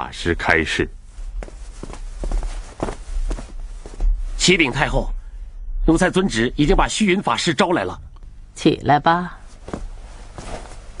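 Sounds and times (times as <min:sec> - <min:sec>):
steady low hum: 0:00.0 - 0:11.0
footsteps: 0:01.1 - 0:04.4, 0:09.6 - 0:11.0.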